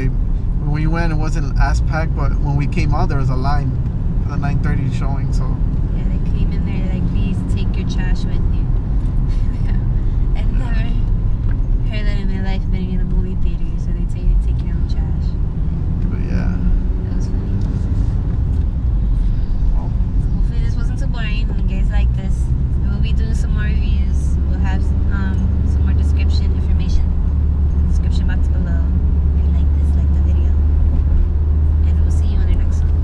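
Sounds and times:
voices talking: 0:00.0 - 0:08.7, 0:09.3 - 0:11.0, 0:16.0 - 0:18.0, 0:19.8 - 0:27.2
car engine and road rumble: 0:00.0 - 0:33.0.

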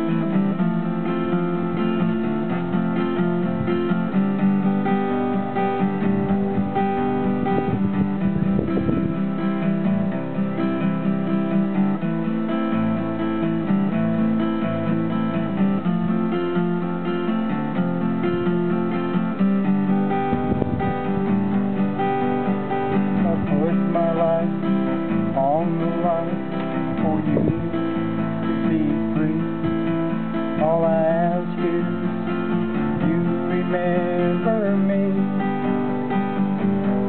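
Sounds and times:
acoustic guitar strummed and picked: 0:00.0 - 0:37.0.

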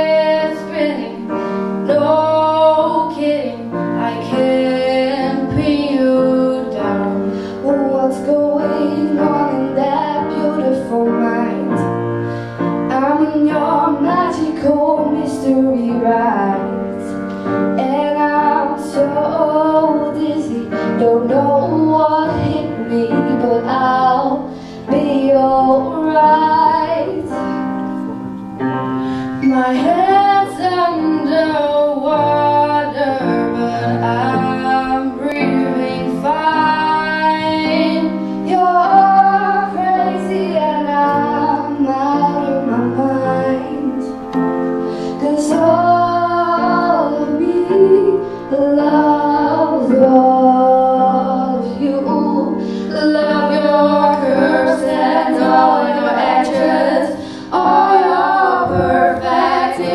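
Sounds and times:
girls singing into microphones: 0:00.0 - 0:28.2, 0:29.0 - 0:59.9
grand piano: 0:00.0 - 0:59.9.

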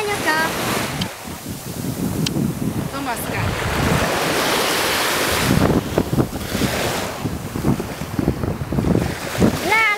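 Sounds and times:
small sea waves washing in: 0:00.0 - 0:09.9
wind buffeting microphone: 0:00.0 - 0:09.9.

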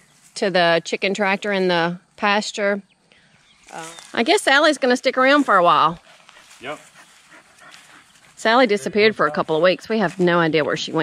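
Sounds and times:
people talking: 0:00.4 - 0:02.8, 0:03.7 - 0:06.0, 0:06.6 - 0:06.8, 0:08.4 - 0:11.0.

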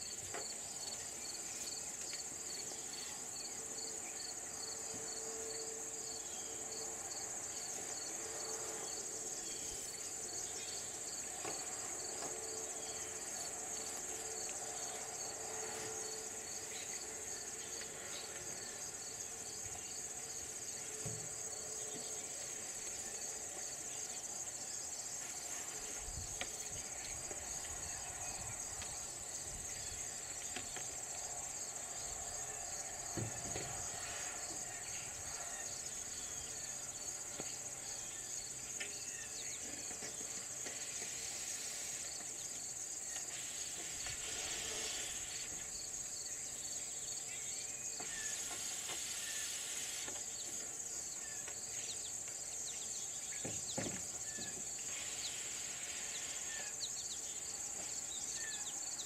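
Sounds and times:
insects high-pitched trill: 0:00.0 - 0:59.0
insects regular chirping: 0:00.0 - 0:59.0.

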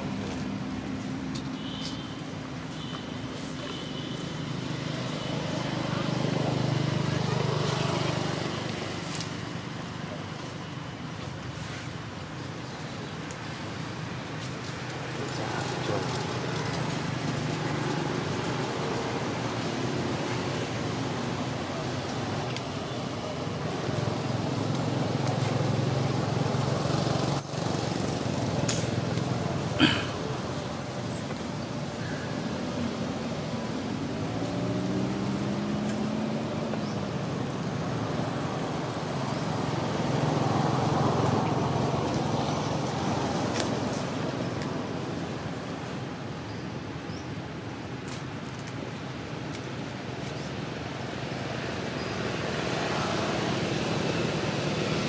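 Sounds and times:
outdoor noise: 0:00.0 - 0:55.0
vehicle engine passing by: 0:33.8 - 0:44.1.

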